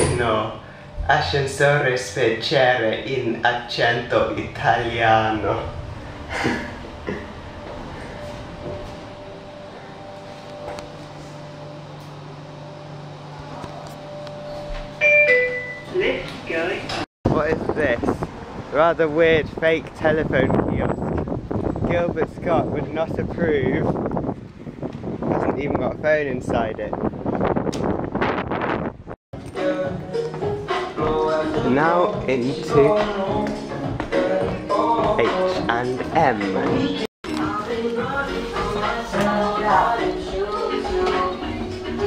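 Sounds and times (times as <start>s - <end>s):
lift drive humming: 4.1s - 15.1s
wind blowing across microphone: 17.3s - 29.2s.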